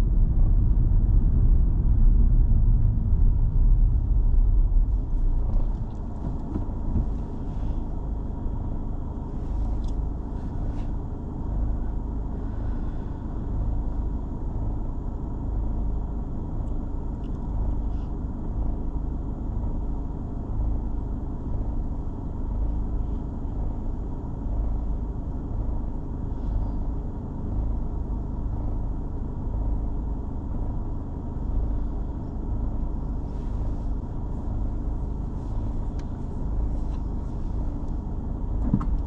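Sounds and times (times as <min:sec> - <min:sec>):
car engine idling inside cabin: 0:00.0 - 0:39.0.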